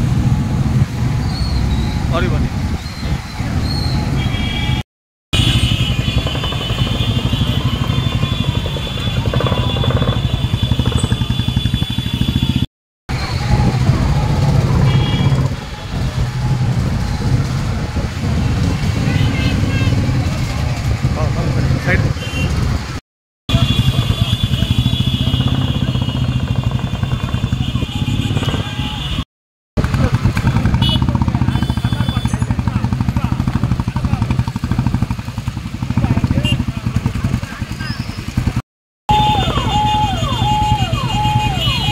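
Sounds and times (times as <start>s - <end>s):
motorcycle engines running: 5.4s - 29.2s, 29.8s - 41.9s
people's voices: 13.1s - 17.4s.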